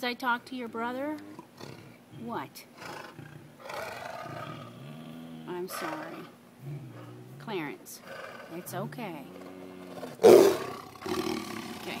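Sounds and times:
tiger roaring: 0:01.2 - 0:02.0, 0:02.8 - 0:12.0.

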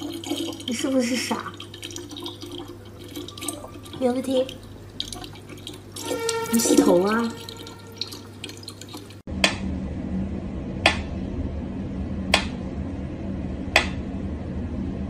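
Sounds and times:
tap water running into bottle: 0:00.0 - 0:09.3
person's voice: 0:04.0 - 0:04.6, 0:06.5 - 0:07.4.

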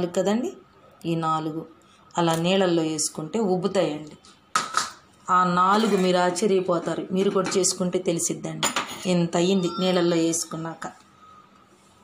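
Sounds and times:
woman speaking: 0:00.0 - 0:04.3, 0:05.2 - 0:11.4.

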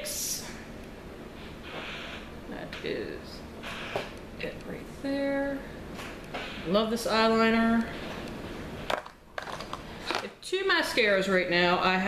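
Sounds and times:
makeup products rustling: 0:08.8 - 0:10.3.

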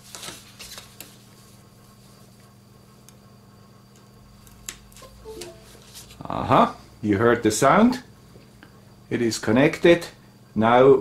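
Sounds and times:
computer device-connected chime: 0:05.0 - 0:05.8.

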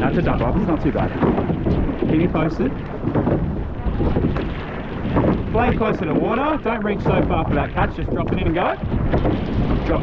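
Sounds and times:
water rushing along boat hull: 0:00.0 - 0:10.0
wind buffeting microphone: 0:00.0 - 0:10.0.

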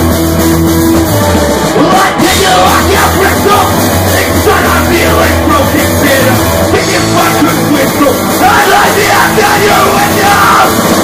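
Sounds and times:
drums: 0:00.0 - 0:11.0
electric guitar: 0:00.0 - 0:11.0
punk band playing live: 0:00.0 - 0:11.0
person yelling vocals: 0:01.8 - 0:10.8.

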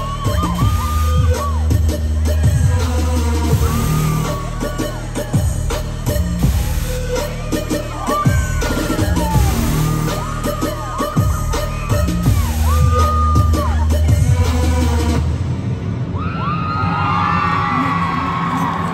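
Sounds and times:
crowd cheering and screaming: 0:00.0 - 0:15.2, 0:15.9 - 0:18.9
loud electronic concert music: 0:00.0 - 0:18.9.

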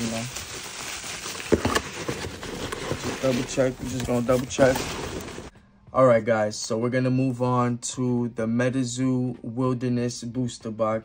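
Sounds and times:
packing material crinkling: 0:00.0 - 0:05.5
sharp crackles: 0:00.0 - 0:05.5.

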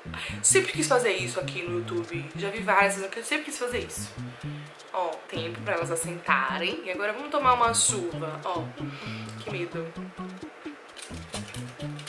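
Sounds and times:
background music with bass line: 0:00.0 - 0:02.9, 0:03.7 - 0:06.8, 0:07.4 - 0:12.0.

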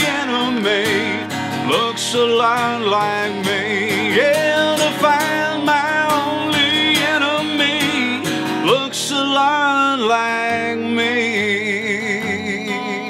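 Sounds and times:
acoustic guitar strumming: 0:00.0 - 0:13.0
man singing long notes: 0:00.0 - 0:13.0.

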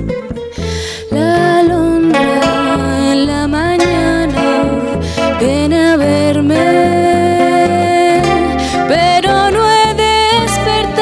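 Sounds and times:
double bass: 0:00.0 - 0:11.0
plucked acoustic guitar: 0:00.0 - 0:11.0
woman singing into microphone: 0:00.0 - 0:11.0.

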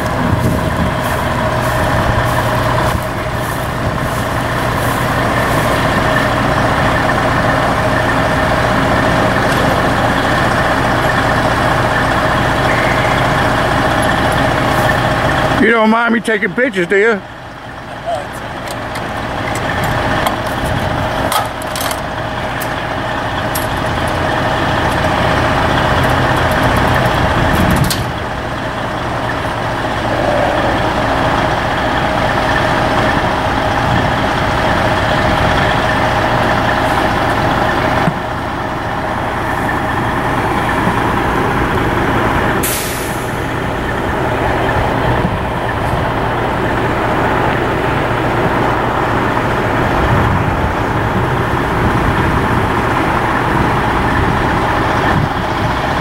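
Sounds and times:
diesel truck engine idling: 0:00.0 - 0:56.0
sharp clicks and clanks: 0:18.4 - 0:22.8, 0:23.4 - 0:28.2.

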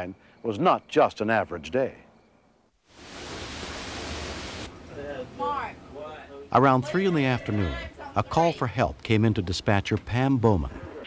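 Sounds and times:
heavy rain falling: 0:02.9 - 0:04.7.

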